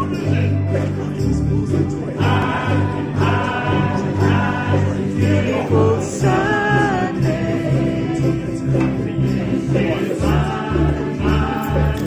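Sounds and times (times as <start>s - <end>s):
group singing in unison: 0.0s - 12.0s
ukuleles strumming: 0.0s - 12.0s.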